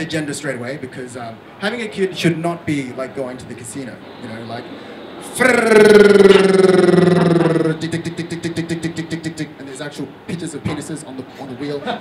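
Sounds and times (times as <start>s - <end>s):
man imitating spinning wheel: 5.2s - 9.6s.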